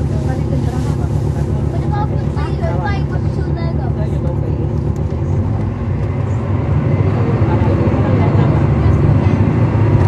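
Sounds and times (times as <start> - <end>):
bus diesel engine drone: 0.0 - 10.0.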